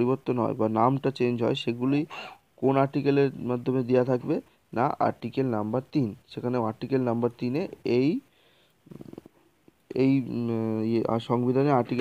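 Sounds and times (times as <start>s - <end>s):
faint low murmur: 0.0s - 12.0s.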